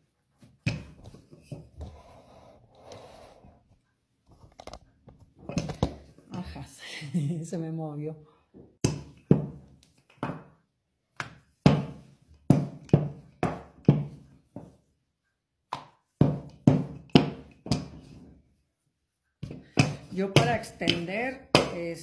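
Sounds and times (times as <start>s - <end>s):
rolling pin knocking on countertop: 11.6s - 14.8s, 15.7s - 18.0s, 19.4s - 22.0s.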